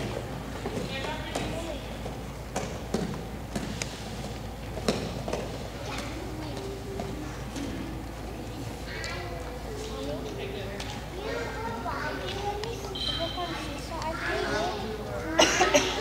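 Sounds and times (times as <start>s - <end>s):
children chattering: 0.0s - 2.4s, 5.2s - 16.0s
feet thudding on gym mats: 0.0s - 6.1s.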